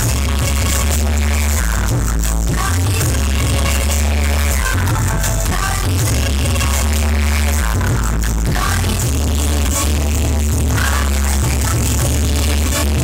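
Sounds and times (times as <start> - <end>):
instrumental dance music: 0.0 - 13.0.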